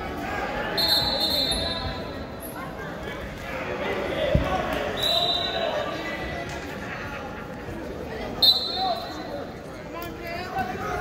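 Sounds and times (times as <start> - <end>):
people shouting in a gym: 0.0 - 2.8.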